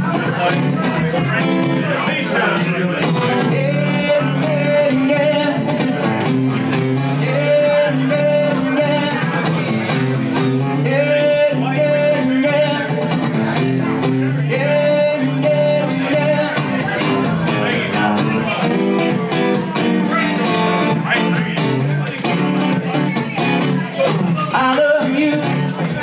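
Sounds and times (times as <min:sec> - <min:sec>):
acoustic guitar strummed funk rhythm: 0:00.0 - 0:26.0.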